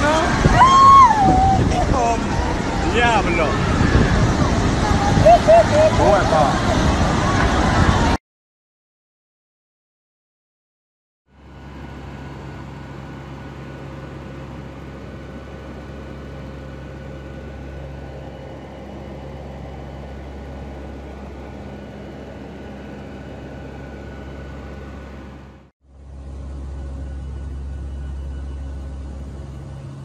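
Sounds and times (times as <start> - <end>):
turboprop aircraft cabin drone: 0.0 - 8.2, 11.3 - 30.0.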